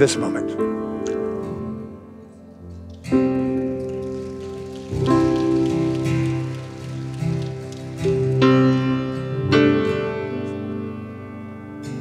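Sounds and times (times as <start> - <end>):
slow keyboard worship music: 0.0 - 12.0.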